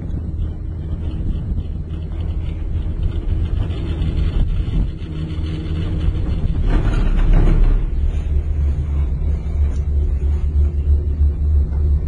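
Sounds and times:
gondola cabin rumbling hum: 0:00.0 - 0:12.0
rattling clatter: 0:00.0 - 0:12.0.

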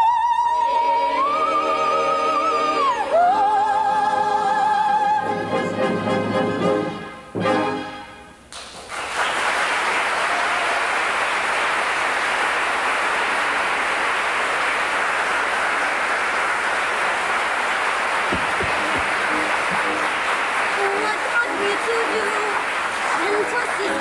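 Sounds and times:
audience applauding: 0:08.5 - 0:24.0
dull low thumps: 0:18.3 - 0:20.1.

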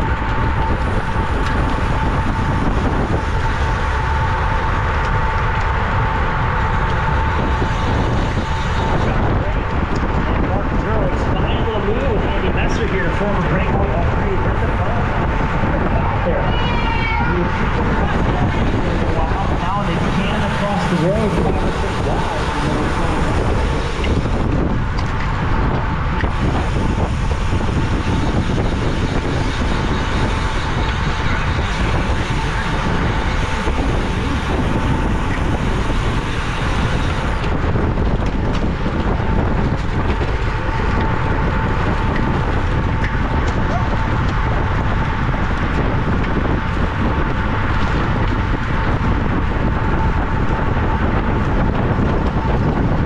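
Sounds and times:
wind rushing over microphone: 0:00.0 - 0:53.0.

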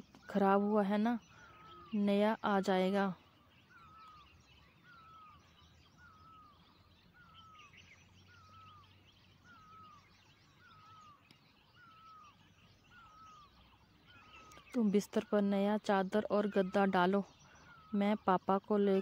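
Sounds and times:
faint bird twittering: 0:00.0 - 0:19.0.

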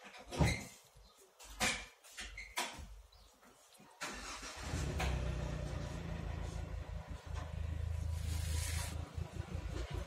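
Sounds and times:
engine humming: 0:04.2 - 0:10.0.

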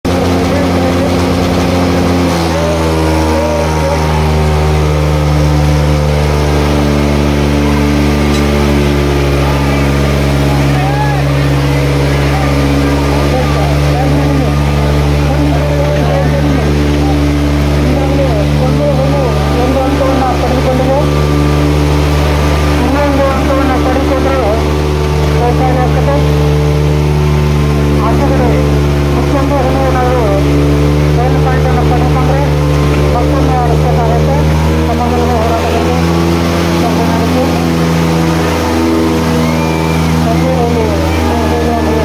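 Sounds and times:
crowd shouting: 0:00.0 - 0:29.8, 0:34.6 - 0:42.0
diesel tractor engines running: 0:00.0 - 0:42.0.

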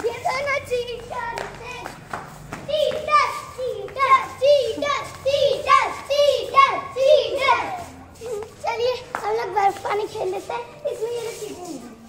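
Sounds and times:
children chanting: 0:02.6 - 0:11.7.

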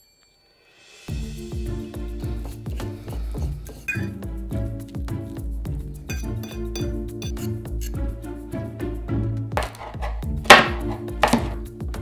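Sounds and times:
background music with beat: 0:01.1 - 0:12.0
fork scraping a bowl: 0:03.8 - 0:04.1, 0:06.1 - 0:08.0, 0:09.6 - 0:10.3.

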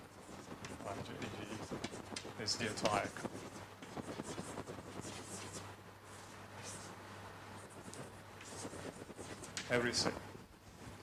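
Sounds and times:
chalk scratching on blackboard: 0:00.0 - 0:07.0, 0:07.6 - 0:10.1
low steady hum: 0:00.0 - 0:11.0.

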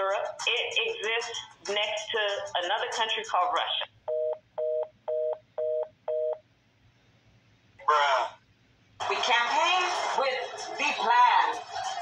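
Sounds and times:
telephone busy tone beeps: 0:04.1 - 0:06.4.

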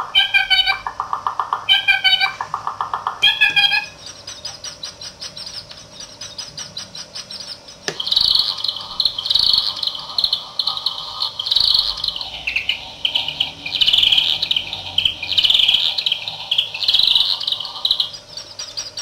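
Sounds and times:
electronic bird chirps stuttering: 0:00.0 - 0:19.0.

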